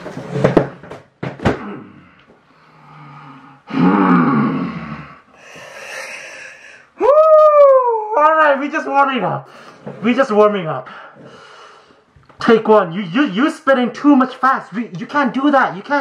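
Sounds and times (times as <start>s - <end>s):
man howling: 7.0s - 8.4s.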